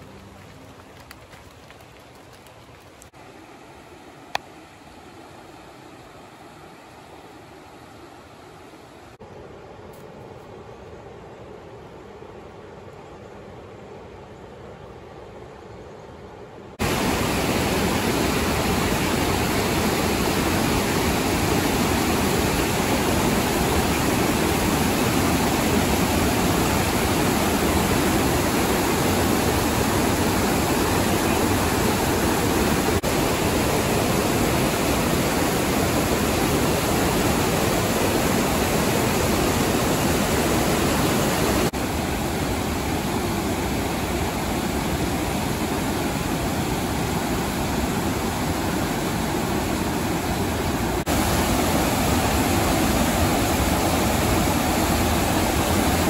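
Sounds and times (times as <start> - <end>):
rapids rushing over rocks: 0.0 - 7.6, 16.8 - 56.0.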